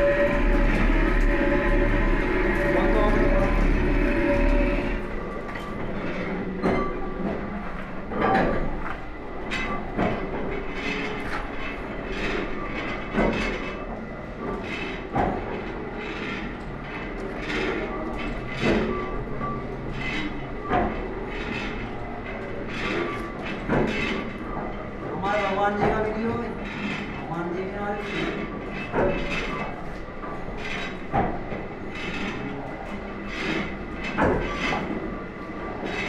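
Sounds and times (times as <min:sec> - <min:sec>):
metal lathe rumbling with whine: 0:00.0 - 0:36.0.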